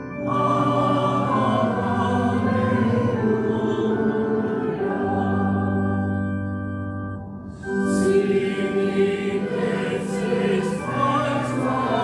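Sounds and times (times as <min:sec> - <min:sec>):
keyboard accompaniment: 0:00.0 - 0:12.0
congregation singing a hymn: 0:00.1 - 0:06.5, 0:07.5 - 0:12.0.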